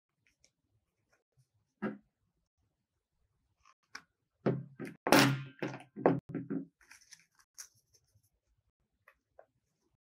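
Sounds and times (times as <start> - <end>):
paper rustling: 6.8 - 8.6.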